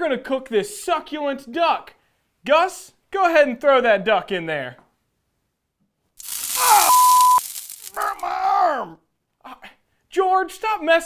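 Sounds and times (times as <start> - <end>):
crackling electric zap: 6.2 - 8.2
man groaning: 6.5 - 7.0
man yelling: 6.5 - 7.2
short steady beep: 6.8 - 7.4.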